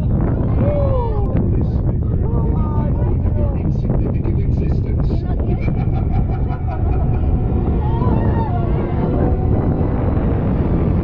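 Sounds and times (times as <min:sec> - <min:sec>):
indistinct voices: 0:00.0 - 0:11.0
wind buffeting microphone: 0:00.0 - 0:11.0.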